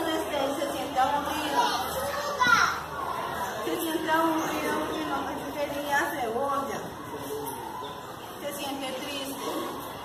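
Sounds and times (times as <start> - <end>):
young children chattering: 0.0 - 10.0.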